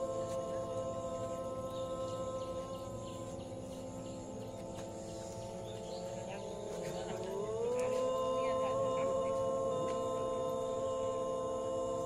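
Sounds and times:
drone of ringing tones: 0.0 - 12.0.

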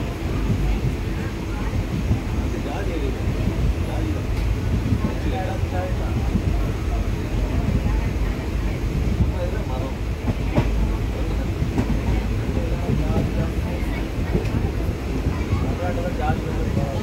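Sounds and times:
train rumbling: 0.0 - 17.0.

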